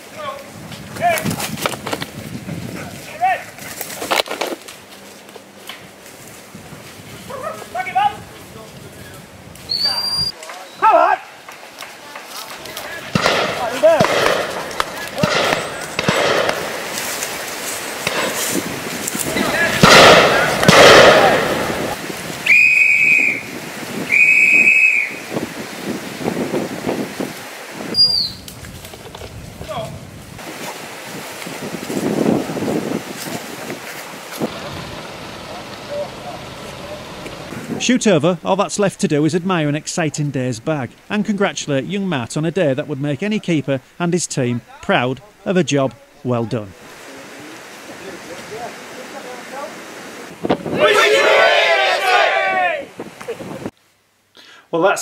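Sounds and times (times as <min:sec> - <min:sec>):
men's voices: 0:07.3 - 0:17.0, 0:19.1 - 0:22.0, 0:34.4 - 0:50.0, 0:50.6 - 0:53.0
whistle blasts: 0:09.7 - 0:11.0, 0:22.4 - 0:25.3, 0:28.0 - 0:28.5.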